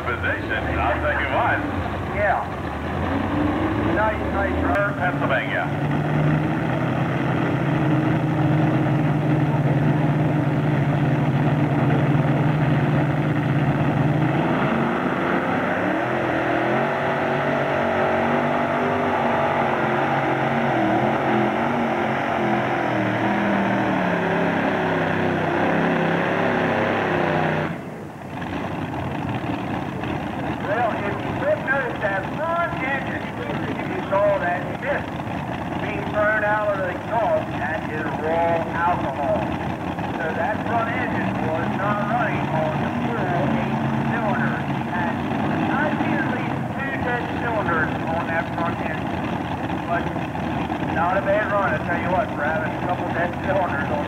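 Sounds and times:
voices: 0.0s - 2.7s, 3.8s - 5.8s, 30.6s - 49.2s, 49.8s - 50.2s, 50.8s - 54.0s
pulling tractor engines revving: 0.0s - 54.0s.

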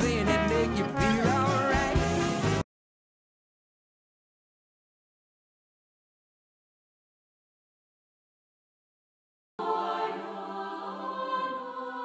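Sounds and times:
jazz band with brass: 0.0s - 2.6s.

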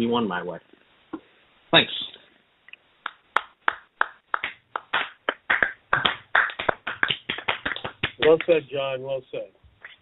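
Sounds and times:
hands clapping: 3.0s - 8.6s.

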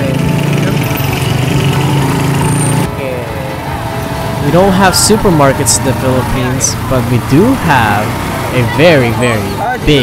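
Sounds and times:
small motorcycle engine running: 0.0s - 10.0s.

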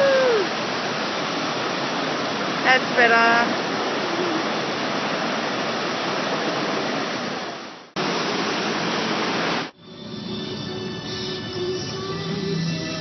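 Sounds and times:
waterfall roaring: 0.0s - 9.8s
background music: 9.8s - 13.0s.

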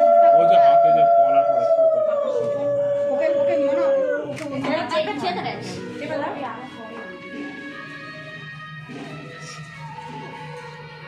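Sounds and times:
women talking: 3.1s - 7.8s.

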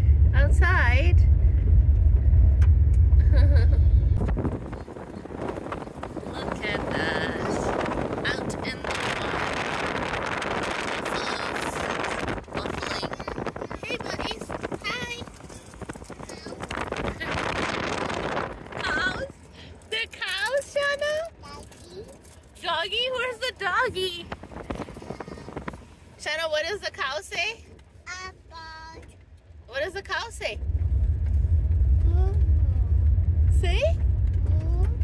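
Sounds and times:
car tyres rolling on gravel: 0.0s - 28.0s, 29.0s - 35.0s
young child babbling: 32.1s - 32.4s, 34.5s - 35.0s.

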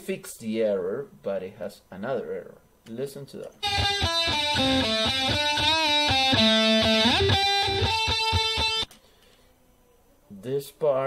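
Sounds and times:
electric guitar melody: 3.6s - 8.9s.

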